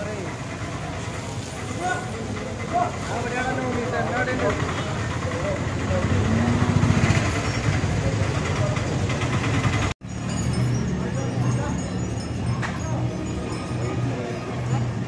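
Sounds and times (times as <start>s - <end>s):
people's voices: 0.0s - 9.8s, 10.4s - 15.0s
rumble of passing vehicles: 0.0s - 15.0s.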